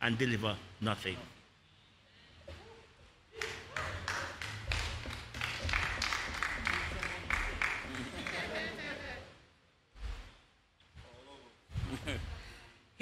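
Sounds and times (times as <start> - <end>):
people clapping: 3.3 - 9.2
people laughing: 6.6 - 9.4, 11.8 - 12.5.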